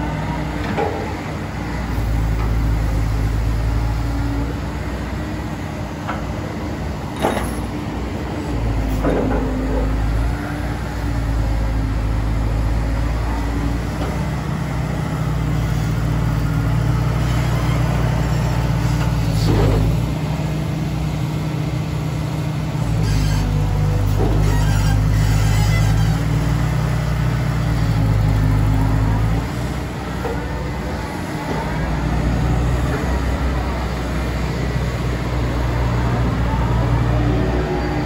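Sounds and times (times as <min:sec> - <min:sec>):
diesel engine running: 0:00.0 - 0:38.0.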